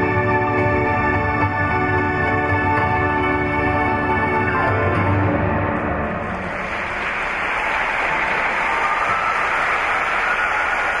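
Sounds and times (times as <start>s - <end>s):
audience applauding: 6.3s - 11.0s.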